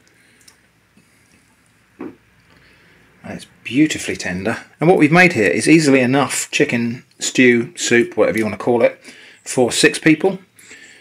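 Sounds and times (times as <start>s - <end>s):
small drips: 0.0s - 2.8s.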